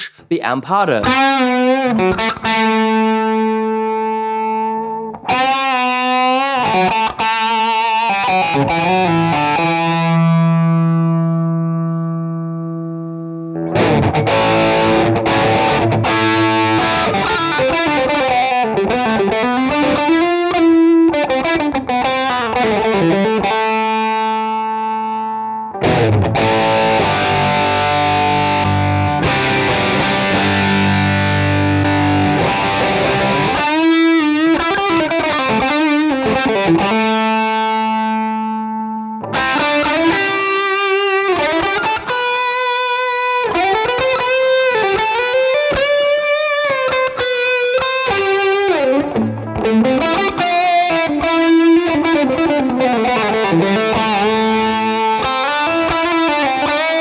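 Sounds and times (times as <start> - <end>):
overdriven electric guitar: 1.0 - 57.0.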